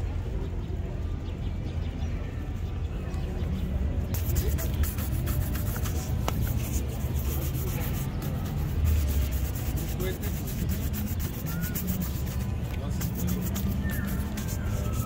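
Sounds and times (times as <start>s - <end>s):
brush scrubbing leather shoe: 4.2s - 15.0s.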